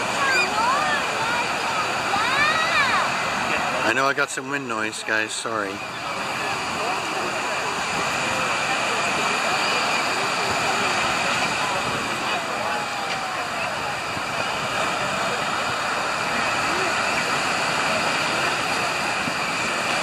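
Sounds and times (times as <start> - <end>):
faint voices: 0.0 - 20.0
surf breaking on beach: 0.0 - 20.0.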